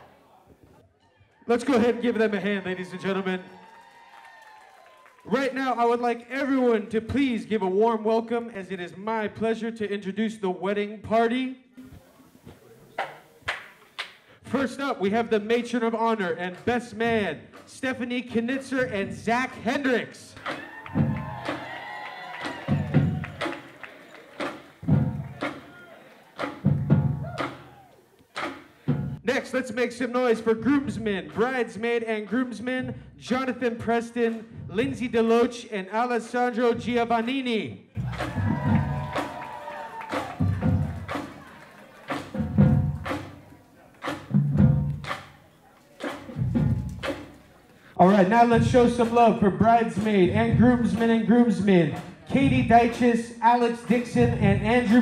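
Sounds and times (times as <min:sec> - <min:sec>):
marching bass drums: 0:20.4 - 0:23.8, 0:24.4 - 0:25.8, 0:26.4 - 0:27.8, 0:28.4 - 0:29.2, 0:38.0 - 0:45.4, 0:46.0 - 0:47.6, 0:48.3 - 0:53.1, 0:54.0 - 0:55.0
bass drum hits: 0:38.0 - 0:39.3.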